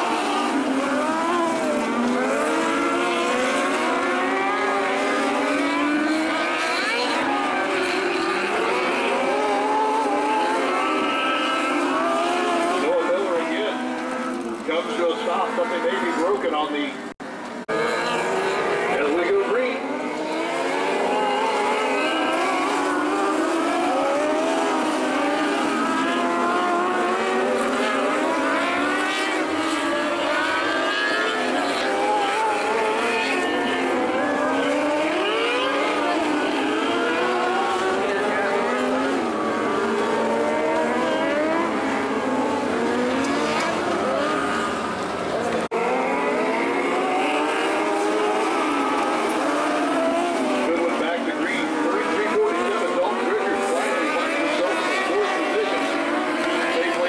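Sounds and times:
high-revving motorcycle engines racing: 0.0 - 57.0.

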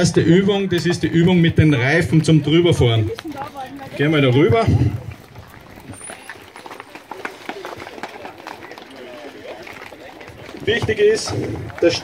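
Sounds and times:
footsteps on asphalt: 0.0 - 12.0
murmured voices: 0.0 - 12.0.

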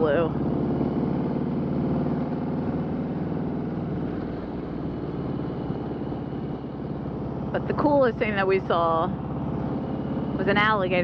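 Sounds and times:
motorcycle engine running: 0.0 - 11.0
wind: 0.0 - 11.0.

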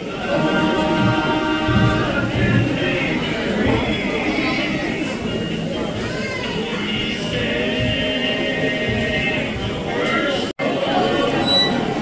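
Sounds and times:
voices singing gospel song: 0.0 - 12.0.

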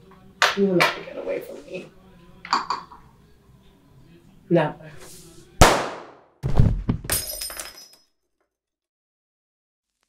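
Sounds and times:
heavy thud: 6.4 - 7.2
glass breaking and clinking: 7.1 - 8.1.

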